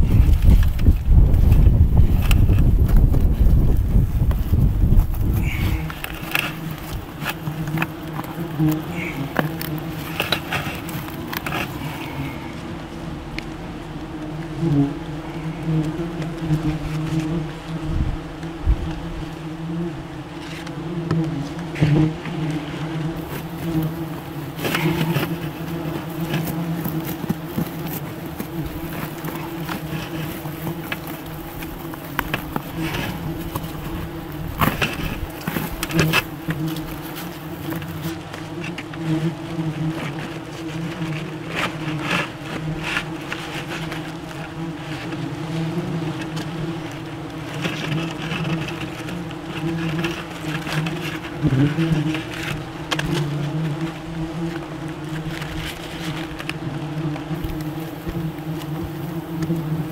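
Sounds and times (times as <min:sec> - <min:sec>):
wasps buzzing in a swarm: 0:00.0 - 0:59.9
sharp clicks and rustles: 0:00.1 - 0:12.4, 0:23.2 - 0:39.0.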